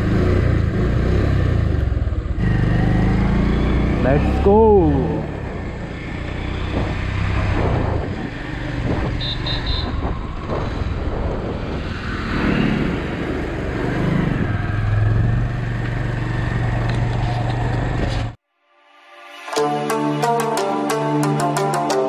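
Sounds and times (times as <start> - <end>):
motorcycle engine running: 0.0 - 10.4
wind and road rush: 0.0 - 18.4.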